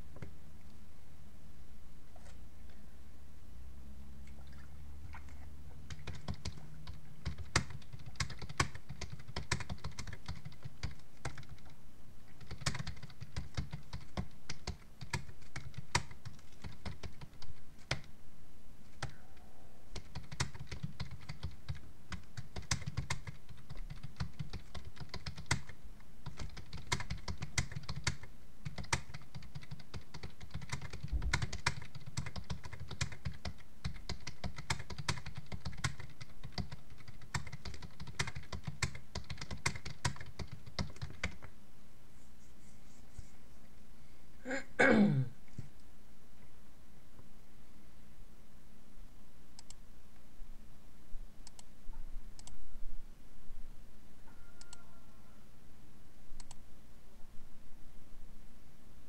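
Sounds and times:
computer keyboard typing: 5.9 - 18.1, 19.9 - 41.5.

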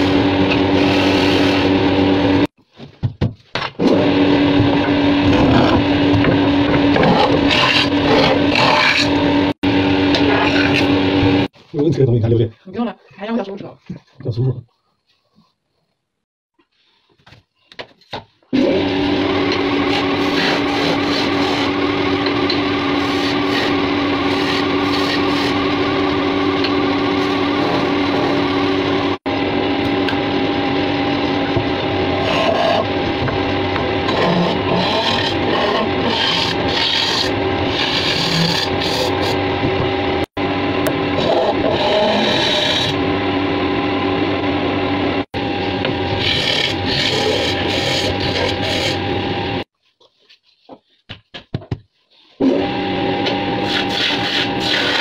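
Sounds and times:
turning tool scraping wood: 5.2 - 11.0, 19.5 - 28.5, 32.2 - 39.4, 41.2 - 43.1, 45.8 - 49.2, 53.6 - 55.0
wood lathe humming: 18.6 - 49.7, 52.4 - 55.0.

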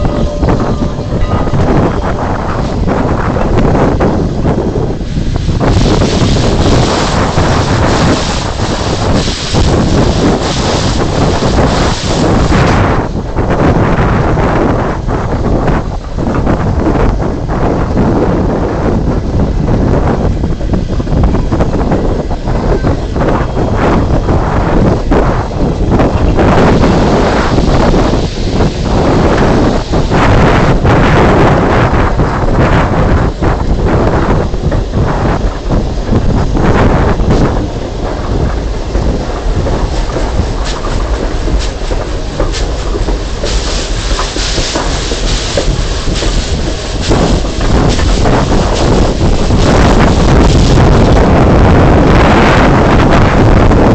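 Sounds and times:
train running: 0.0 - 53.9
wind buffeting microphone: 0.0 - 53.9
hiss: 5.5 - 12.9, 37.4 - 51.1.

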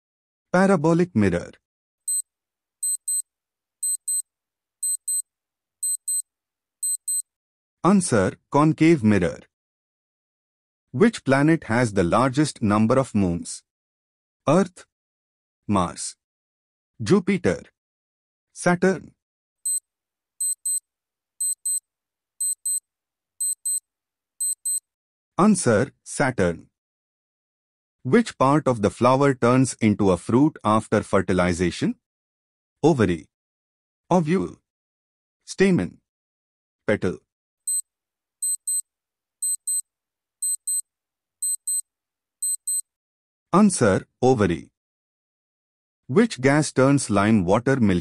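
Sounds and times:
electronic clock ticking: 2.8 - 3.2, 3.8 - 4.2, 4.8 - 5.2, 5.8 - 6.2, 6.8 - 7.2, 20.4 - 20.8, 21.4 - 21.8, 22.4 - 22.8, 23.4 - 23.8, 24.4 - 24.8, 38.4 - 38.8, 39.4 - 39.8, 40.4 - 40.8, 41.4 - 41.8, 42.4 - 42.8.

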